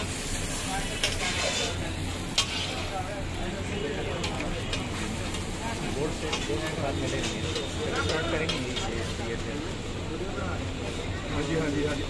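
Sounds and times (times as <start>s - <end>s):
food sizzling on griddle: 0.0s - 12.0s
metal spatula clanking: 1.0s - 2.9s.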